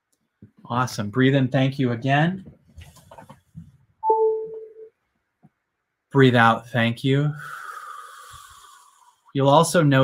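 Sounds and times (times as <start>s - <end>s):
two-note electronic beep: 4.0s - 4.9s.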